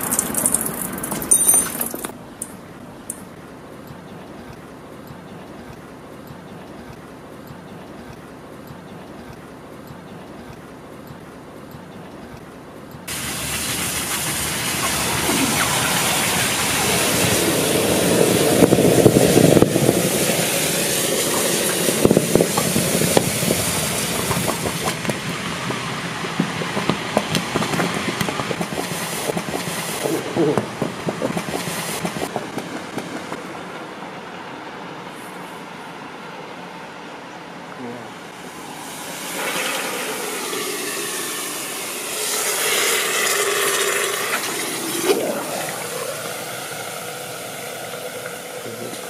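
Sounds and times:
water boiling and hissing: 13.1s - 32.3s, 38.3s - 49.0s.

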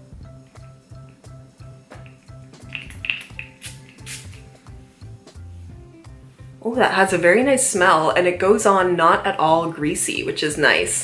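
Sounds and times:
background music with steady beat: 0.0s - 11.0s
spray bottle hissing: 1.9s - 5.2s.

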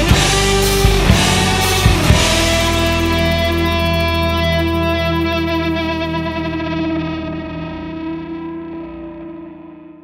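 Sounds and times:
distorted electric guitars ringing: 0.0s - 10.0s.

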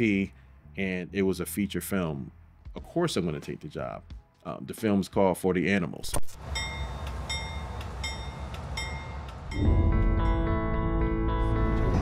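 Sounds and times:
high metallic ringing tones: 6.4s - 9.8s
freight train rumbling: 6.4s - 10.1s.

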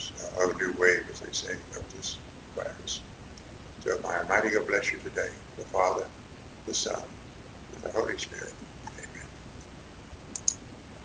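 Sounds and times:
faint room noise: 0.0s - 11.0s
sharp clicks: 10.3s - 10.6s.

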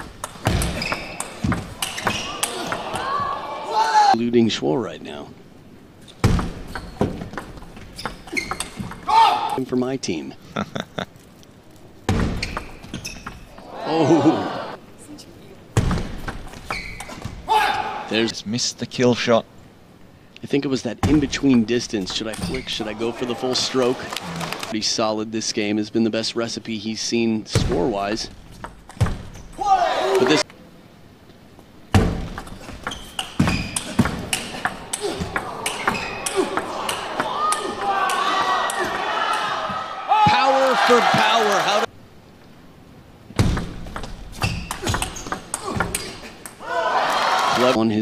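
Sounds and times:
crowd voices rising: 2.1s - 4.2s, 13.5s - 14.8s, 22.5s - 24.7s, 34.7s - 41.9s.

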